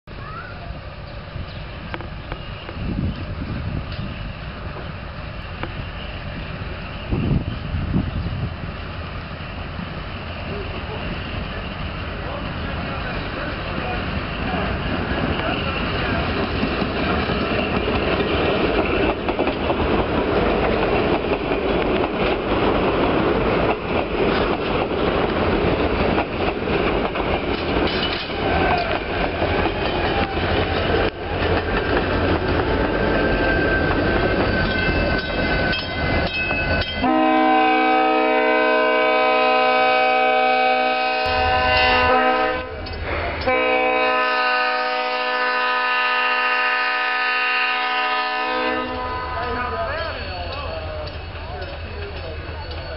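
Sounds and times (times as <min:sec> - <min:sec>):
wheels clattering on rails: 0:09.5 - 0:37.1, 0:41.2 - 0:43.6, 0:48.8 - 0:52.9
locomotive air horn: 0:37.0 - 0:42.8, 0:43.4 - 0:49.7.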